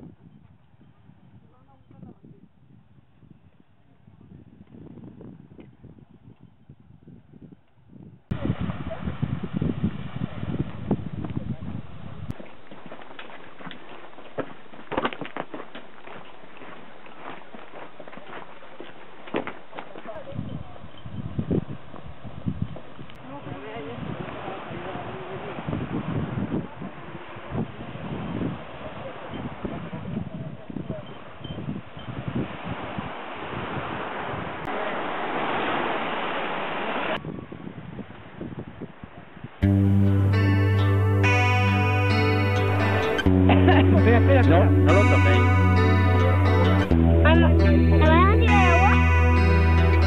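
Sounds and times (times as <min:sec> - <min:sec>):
wind rumble on microphone: 0:00.0 - 0:12.4, 0:19.6 - 0:34.7, 0:37.1 - 0:39.7
footsteps crunching on gravel: 0:12.3 - 0:20.3.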